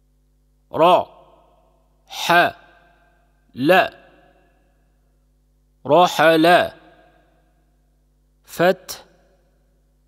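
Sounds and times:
man pronouncing a syllable: 0:00.7 - 0:01.1.

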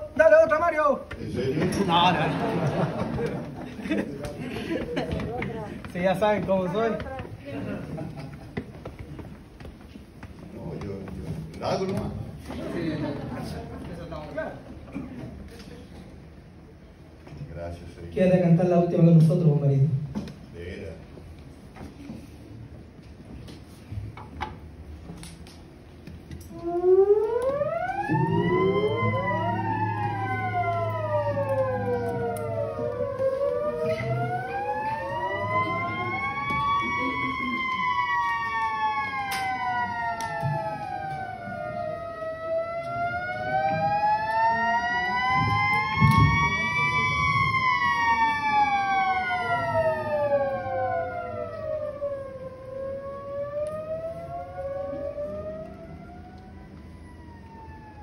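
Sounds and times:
theremin sliding tones: 0:26.5 - 0:58.0.

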